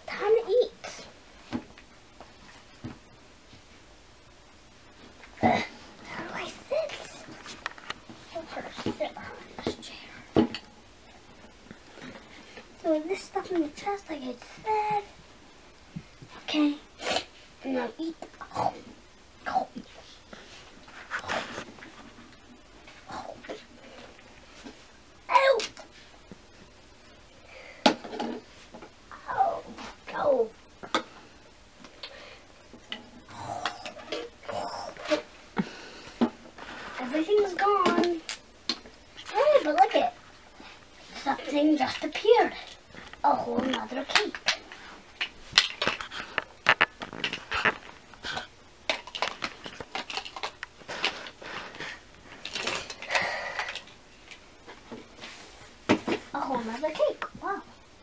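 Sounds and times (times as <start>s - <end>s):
child vocal sounds: 29.1s - 30.6s, 33.3s - 35.2s.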